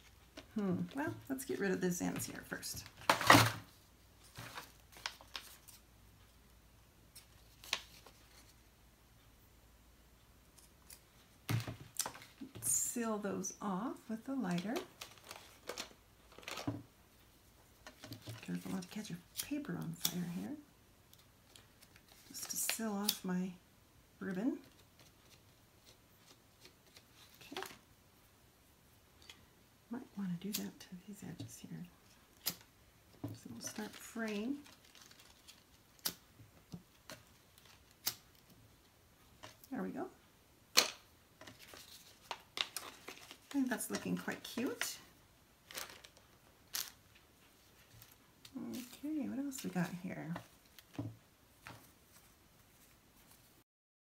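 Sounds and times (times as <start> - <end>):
paper envelope rustle: 4.2 - 5.8, 33.6 - 36.1, 41.4 - 44.8, 45.6 - 47.0.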